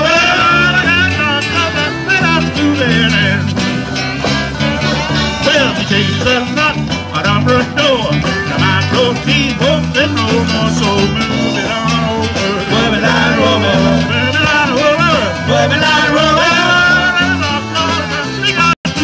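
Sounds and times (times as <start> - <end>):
accordion: 0.0 - 19.0
bass guitar: 0.0 - 19.0
drums: 0.0 - 19.0
electric and acoustic guitars: 0.0 - 19.0
saxophone: 11.2 - 18.6.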